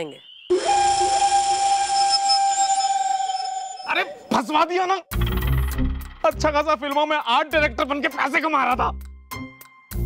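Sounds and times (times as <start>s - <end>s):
long steady whistle: 0.4s - 4.0s.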